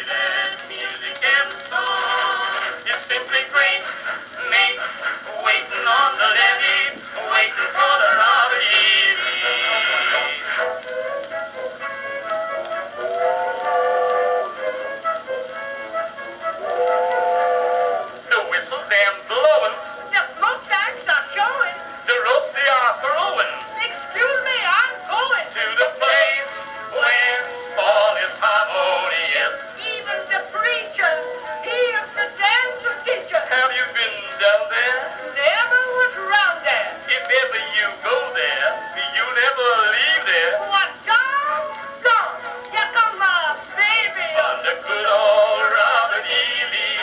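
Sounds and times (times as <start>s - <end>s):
old phonograph recording of man singing: 0.0s - 47.0s.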